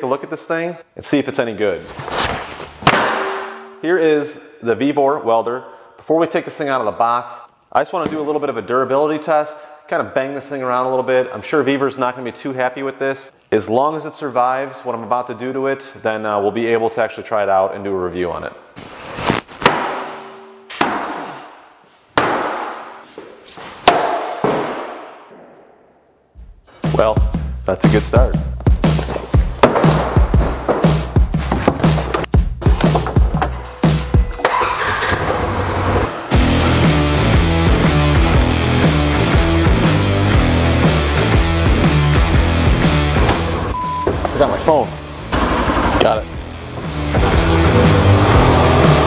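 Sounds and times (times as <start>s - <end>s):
metal pipe striking metal box: 2.8s - 3.8s.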